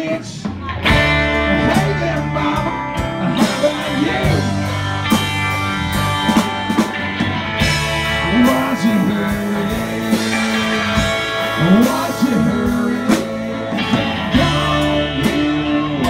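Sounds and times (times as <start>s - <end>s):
bass and drums: 0.0s - 16.0s
electric guitar bent notes: 0.8s - 16.0s.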